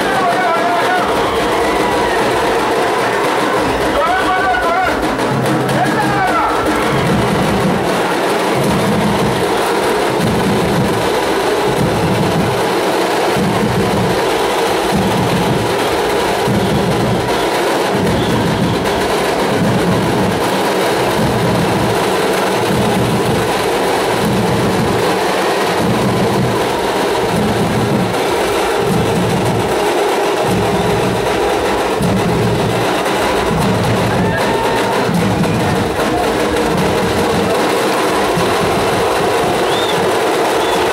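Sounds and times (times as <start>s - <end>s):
deep dhol drum beats: 0.0s - 40.9s
tasha drums clattering: 0.0s - 40.9s.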